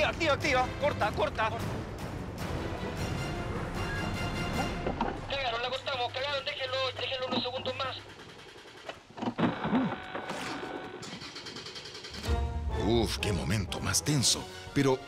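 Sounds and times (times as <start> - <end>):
tense background music: 0.0 - 9.2, 10.3 - 15.0
crackly walkie-talkie voice: 5.4 - 8.1.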